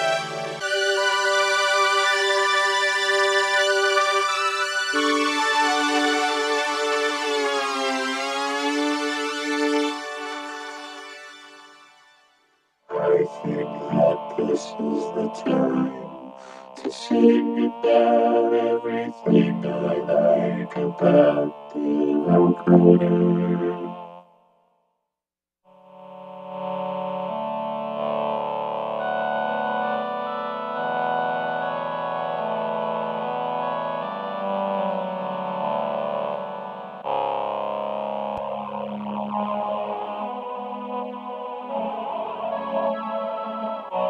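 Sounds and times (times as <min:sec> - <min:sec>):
synth strings holding a chord: 0:00.0 - 0:12.2, 0:12.9 - 0:24.2, 0:26.0 - 0:44.0.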